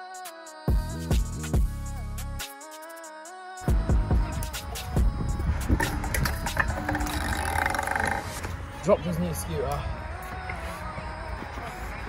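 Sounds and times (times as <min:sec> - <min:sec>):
scooter wheels rolling on concrete: 0:04.4 - 0:12.0.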